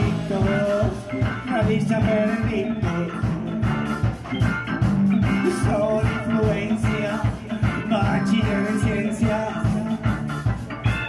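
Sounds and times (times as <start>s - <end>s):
bass guitar: 0.0s - 11.0s
electric guitar: 0.0s - 11.0s
keyboard: 0.0s - 11.0s
steady drum beat: 0.0s - 11.0s.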